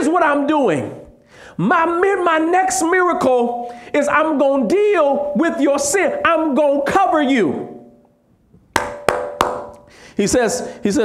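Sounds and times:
sharp percussive hits: 8.8s - 9.9s.

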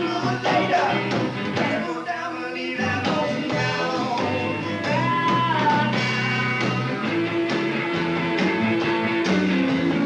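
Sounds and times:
live band playing blues: 0.0s - 10.0s.

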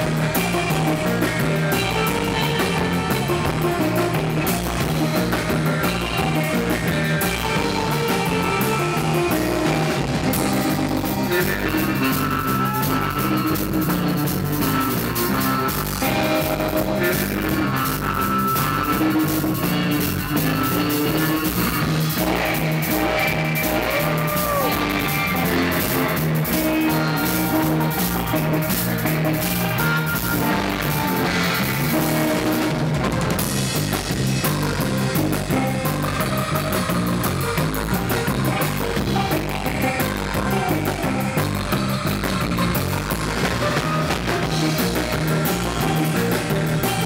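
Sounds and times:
bass guitar line: 0.0s - 47.0s
drum kit: 0.0s - 47.0s
electric guitar: 0.0s - 47.0s.

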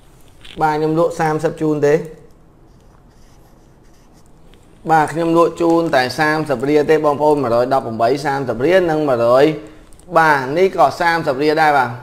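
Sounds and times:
man talking: 0.5s - 2.3s, 4.8s - 12.0s.

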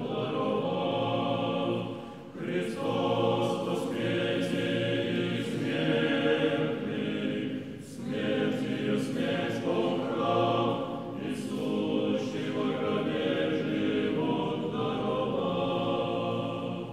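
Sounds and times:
choir singing a slow chant: 0.0s - 16.9s.

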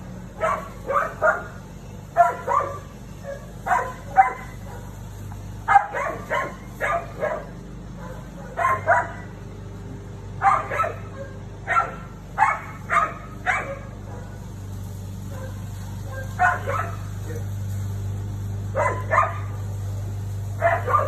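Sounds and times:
dog barking: 0.4s - 5.0s, 5.7s - 9.4s, 10.4s - 14.5s, 15.3s - 17.5s, 18.7s - 19.6s, 20.6s - 21.0s.

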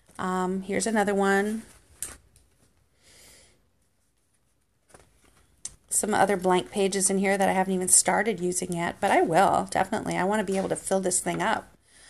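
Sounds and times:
faint paper rustling: 0.9s - 2.9s, 3.8s - 5.6s, 8.8s - 11.7s
pages turning with papery swish: 9.8s - 11.0s.

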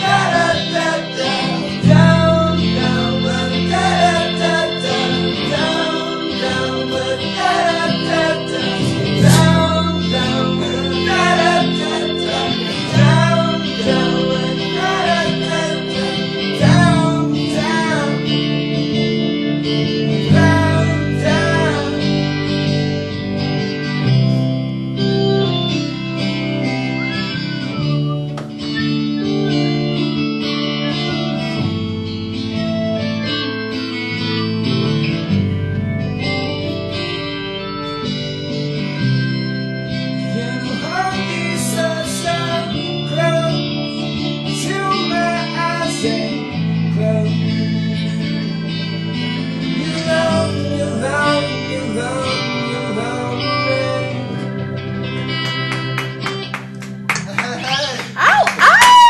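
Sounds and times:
person singing: 0.0s - 23.6s, 40.2s - 55.0s
guitar chords: 0.0s - 59.0s.

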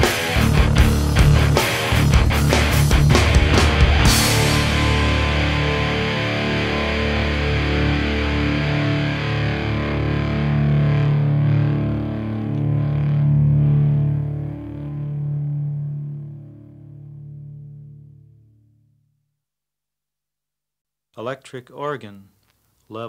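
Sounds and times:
distorted electric guitar ringing: 0.0s - 18.6s.

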